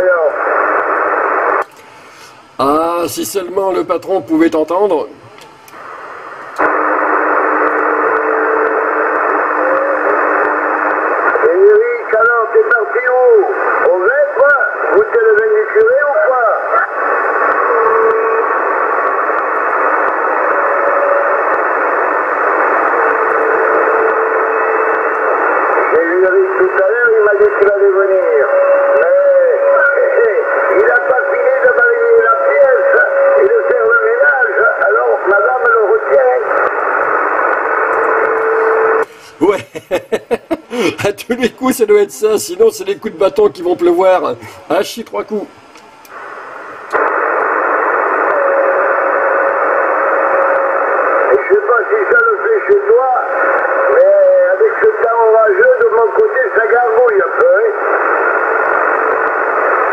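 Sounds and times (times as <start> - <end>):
radio static hiss: 0.0 - 59.9
short steady radio whistles: 16.5 - 39.7, 46.0 - 59.9
weak garbled radio voice: 39.0 - 45.5.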